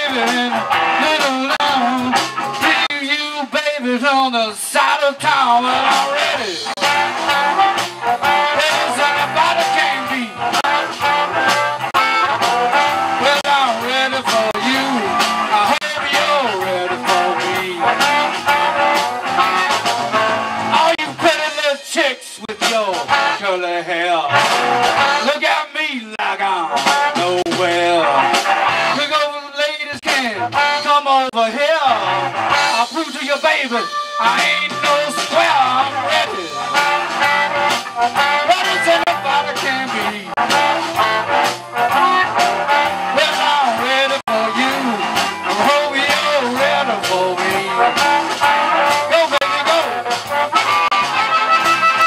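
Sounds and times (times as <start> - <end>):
electric guitar: 0.0 - 25.5, 26.2 - 52.0
bass guitar: 0.0 - 52.0
blues band playing: 0.0 - 52.0
drums: 0.0 - 52.0
keyboard: 0.0 - 52.0
harmonica bending notes: 5.6 - 20.9, 32.0 - 52.0
harmonica: 32.6 - 39.0, 44.6 - 52.0.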